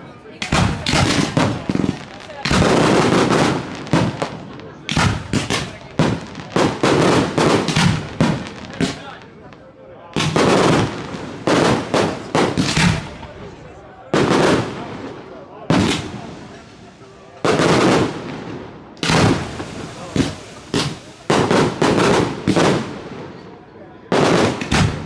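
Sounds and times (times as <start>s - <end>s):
fireworks bursting with sharp bangs: 0.3s - 25.0s.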